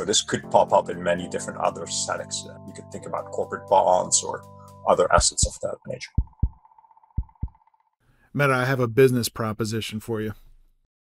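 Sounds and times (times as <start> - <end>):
low heartbeat thuds: 5.2 - 6.6, 7.2 - 7.6.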